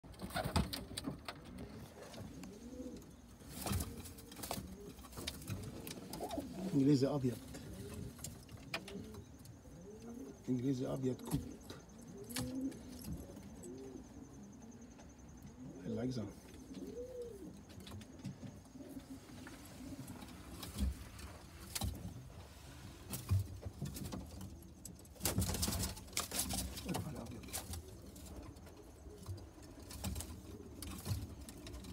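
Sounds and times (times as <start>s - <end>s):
pigeons cooing: 0.1s - 31.9s.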